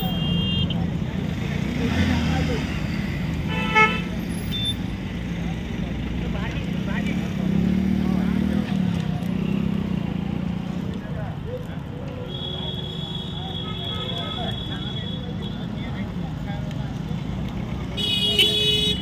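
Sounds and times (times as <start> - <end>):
vehicle horn toot: 0.0 - 0.8, 3.5 - 4.8, 12.3 - 15.3, 18.0 - 19.0
people talking nearby: 0.0 - 19.0
road traffic passing: 0.0 - 19.0.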